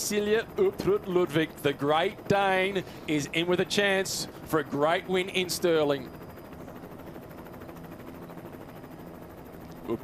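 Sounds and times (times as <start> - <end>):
faint fluttering engine drone: 0.0 - 10.0.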